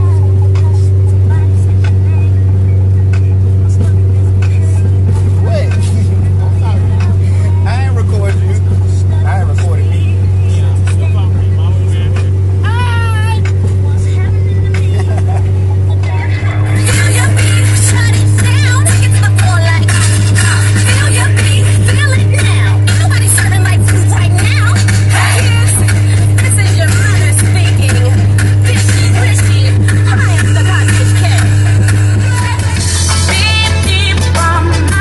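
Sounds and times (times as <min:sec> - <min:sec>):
car cabin drone: 0:00.0 - 0:35.0.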